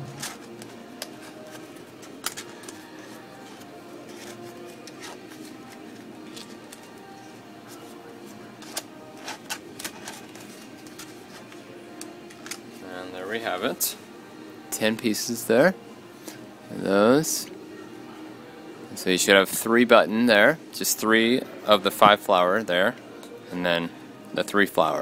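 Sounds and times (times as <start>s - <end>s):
soft background music: 0.0s - 25.0s
plastic pieces clicking and rustling: 2.0s - 2.8s.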